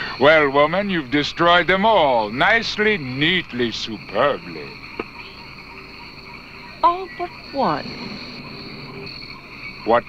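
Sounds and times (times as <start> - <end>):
frogs and insects chirring: 0.0 - 10.0.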